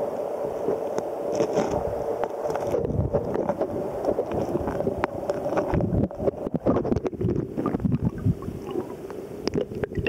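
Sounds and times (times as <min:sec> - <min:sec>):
muffled underwater river rush: 0:00.0 - 0:10.0.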